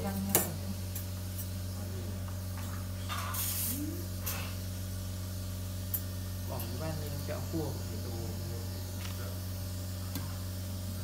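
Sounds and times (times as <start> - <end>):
electrical hum of equipment: 0.0 - 11.0.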